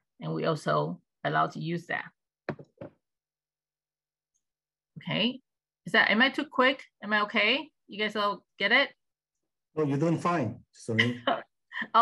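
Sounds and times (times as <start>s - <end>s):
brief knock-like taps: 2.5s - 3.0s.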